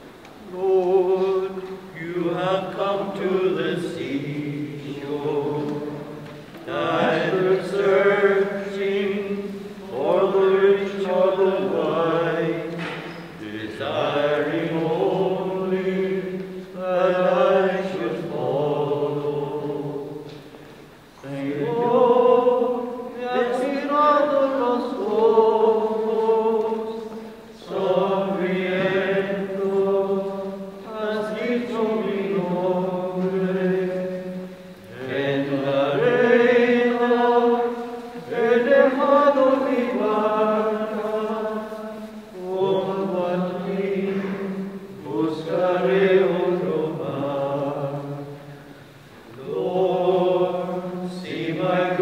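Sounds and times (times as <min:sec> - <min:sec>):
hymn sung in long held notes: 0:00.0 - 0:52.0.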